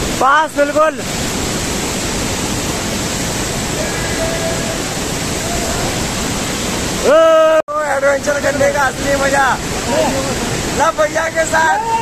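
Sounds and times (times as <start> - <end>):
waterfall rushing: 0.0 - 12.0.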